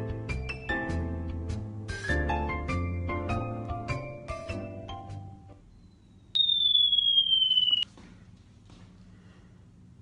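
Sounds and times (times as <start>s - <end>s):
long high electronic beep: 6.4s - 7.8s.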